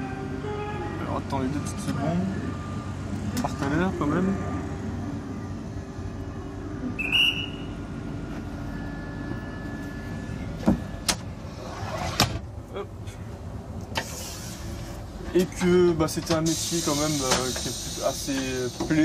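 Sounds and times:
train equipment hum: 0.0s - 19.0s
brief hiss: 14.0s - 14.9s, 16.4s - 18.8s.

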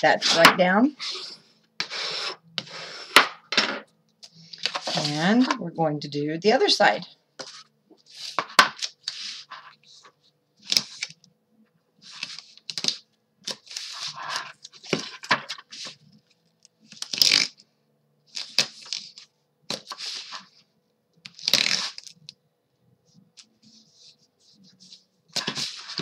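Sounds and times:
tape ripping and rustling: 17.0s - 17.6s, 21.3s - 22.2s.

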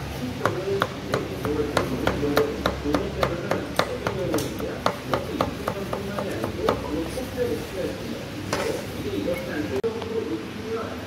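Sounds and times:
cleaver chopping on wooden block: 0.4s - 6.9s.

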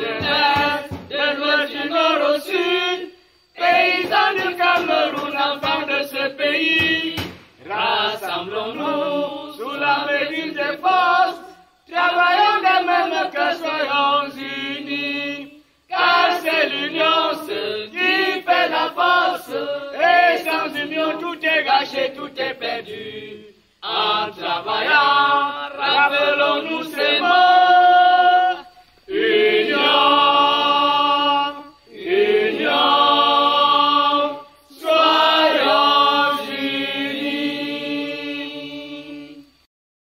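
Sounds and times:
group chanting unaccompanied: 0.0s - 39.7s.

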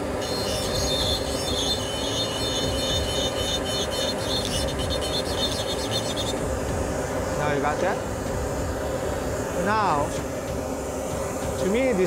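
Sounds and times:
dental drill whining: 0.0s - 12.0s
steady low hum: 0.0s - 12.0s.

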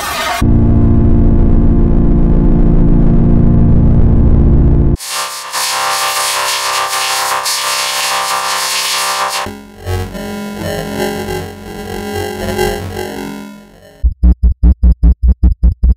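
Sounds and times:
harsh buzzing distorted tones: 5.0s - 14.0s.

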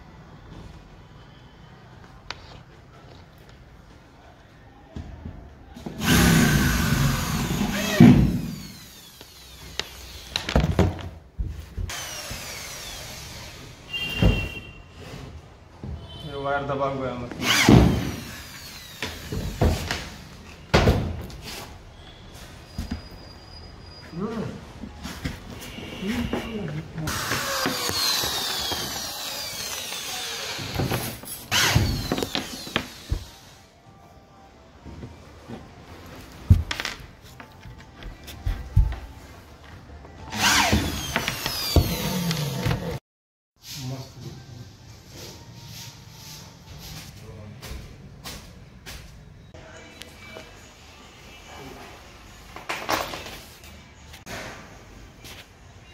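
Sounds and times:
electric drill drilling: 6.0s - 10.6s, 11.9s - 13.8s, 17.4s - 19.7s, 27.1s - 33.6s, 40.3s - 42.8s.

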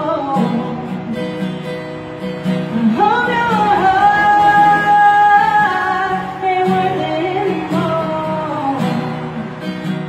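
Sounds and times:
woman singing: 0.0s - 1.2s, 2.7s - 9.5s
strummed acoustic guitar: 0.0s - 10.0s.

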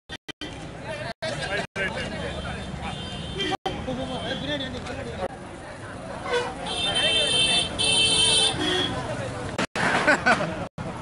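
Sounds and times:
street crowd chatter: 0.4s - 11.0s
vehicle horn honking: 2.3s - 4.7s, 6.2s - 9.0s.

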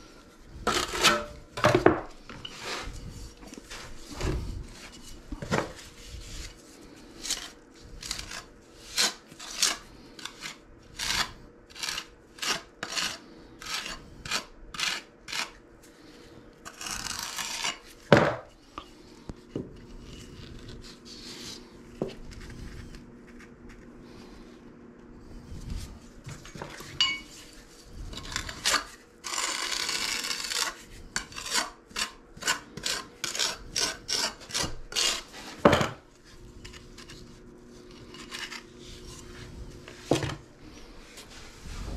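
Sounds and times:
putty knives scraping mortar: 0.6s - 6.6s, 7.2s - 15.6s, 16.7s - 18.0s, 28.0s - 35.7s.

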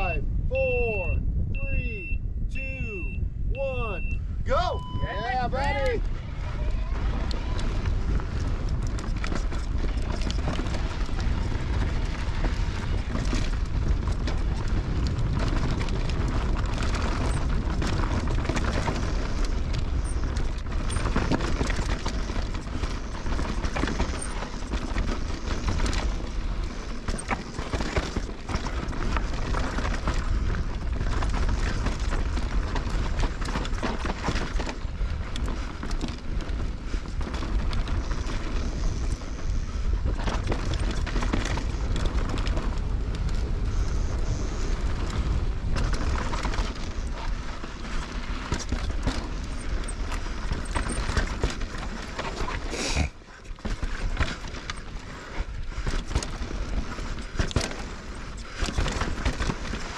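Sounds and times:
wind buffeting microphone: 0.0s - 52.8s
tyres rolling over rocky dirt: 6.0s - 59.9s
bike rattling and knocking: 6.1s - 59.9s.

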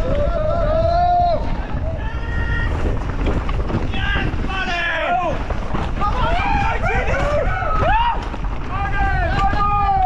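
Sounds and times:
mountain bike rattling and rumbling: 0.0s - 10.0s
wind buffeting microphone: 0.0s - 10.0s.

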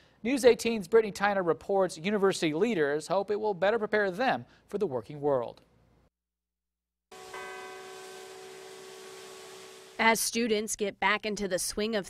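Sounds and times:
bell ringing: 7.1s - 10.0s.

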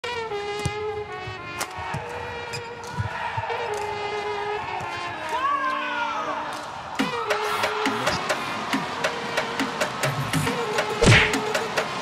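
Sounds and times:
racket hitting shuttlecock: 11.0s - 11.4s.

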